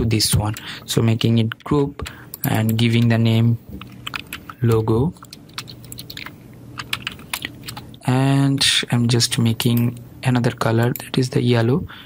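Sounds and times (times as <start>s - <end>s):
computer keyboard keys clicking: 3.8s - 8.0s.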